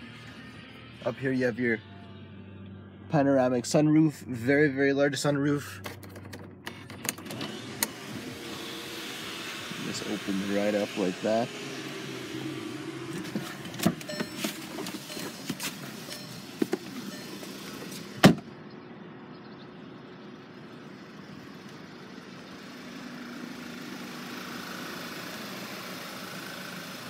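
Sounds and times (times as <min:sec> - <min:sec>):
car cabin hum: 0:05.9 - 0:18.5
car door shutting: 0:13.1 - 0:18.5.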